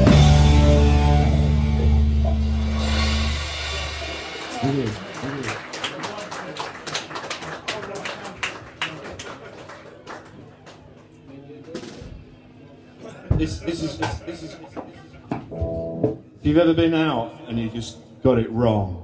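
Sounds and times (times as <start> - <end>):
rock band final chord: 0.0 - 5.4
hand claps: 4.4 - 11.8.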